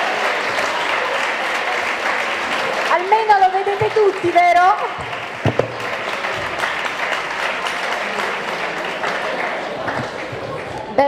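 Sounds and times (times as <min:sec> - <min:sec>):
audience applauding: 0:00.0 - 0:11.0
thump: 0:05.0 - 0:05.8.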